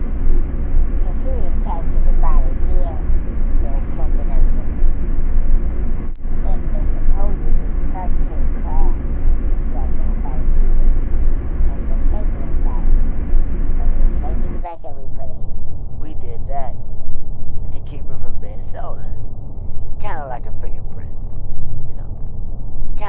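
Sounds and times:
loud steady rumbling: 0:00.0 - 0:23.0
indistinct voices: 0:01.1 - 0:04.7, 0:06.5 - 0:10.8, 0:11.7 - 0:13.0, 0:13.8 - 0:16.8, 0:17.6 - 0:19.2, 0:20.0 - 0:21.2, 0:21.8 - 0:22.2.

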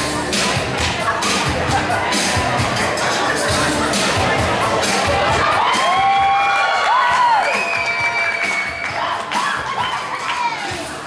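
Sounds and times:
loud dance music: 0:00.0 - 0:11.0
audience cheering: 0:05.4 - 0:10.8.

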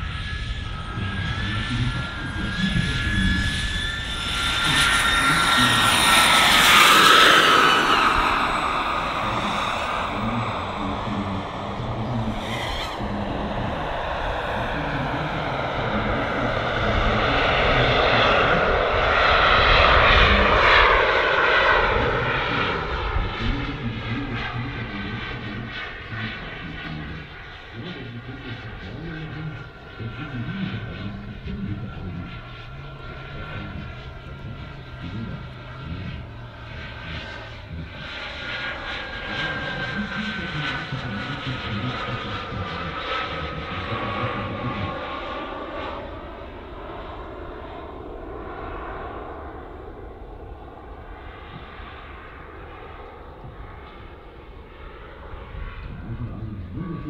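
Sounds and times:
high turbine whine: 0:00.0 - 0:57.0
model jet turbines rushing: 0:00.0 - 0:57.0.

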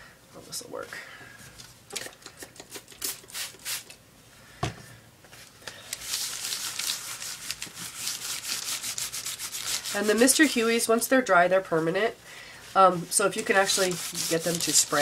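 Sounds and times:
paper towel rubbing surface: 0:06.0 - 0:11.0, 0:12.7 - 0:15.0
paper towel scuffs: 0:12.6 - 0:15.0.

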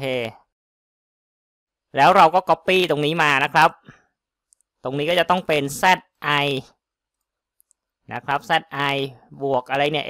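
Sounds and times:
man speaking: 0:00.0 - 0:00.5, 0:01.9 - 0:03.9, 0:04.8 - 0:06.8, 0:08.1 - 0:10.0
computer mouse clicks: 0:04.4 - 0:04.8, 0:07.1 - 0:07.9.

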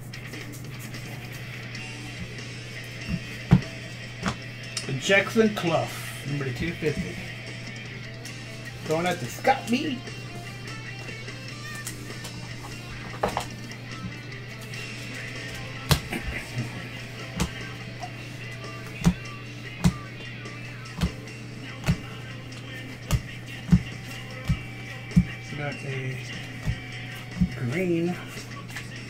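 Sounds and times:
background music: 0:00.0 - 0:29.0
steady low hum: 0:00.0 - 0:29.0
cards clicking: 0:11.6 - 0:14.1.

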